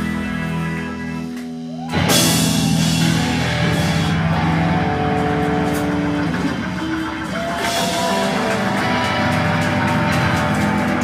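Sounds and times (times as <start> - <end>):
electric guitar: 0.0 - 11.0
organ chords: 0.0 - 11.0
drum and cymbal hits: 1.7 - 11.0.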